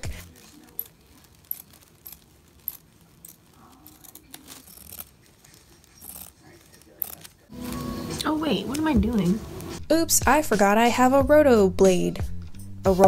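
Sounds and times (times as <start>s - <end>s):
fabric scissors snipping: 0.0s - 7.4s.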